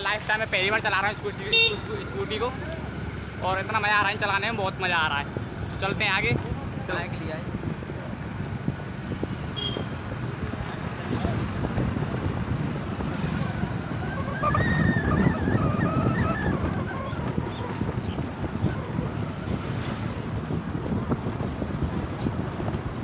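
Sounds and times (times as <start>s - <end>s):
road rumble: 0.0s - 23.0s
vehicle horn honking: 1.5s - 1.9s, 9.5s - 9.9s
wind buffeting microphone: 3.9s - 23.0s.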